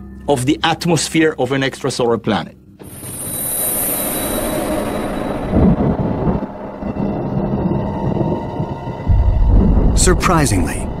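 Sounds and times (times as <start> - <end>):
soundtrack music: 2.8 - 11.0
deep low rumble: 5.4 - 11.0.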